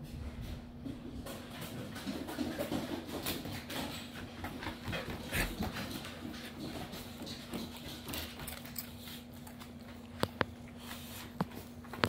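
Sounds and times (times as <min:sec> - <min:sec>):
dog claws clicking on wooden floor: 0:01.2 - 0:10.6.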